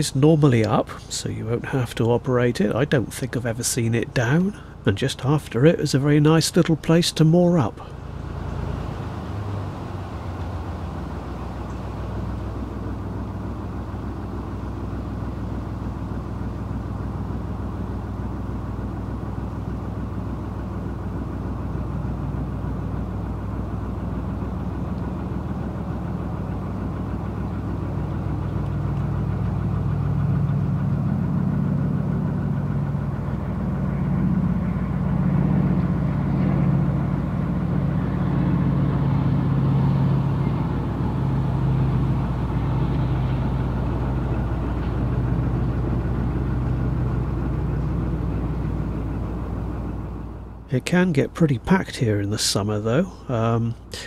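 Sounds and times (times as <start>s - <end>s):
boat diesel engine droning: 0.0s - 54.0s.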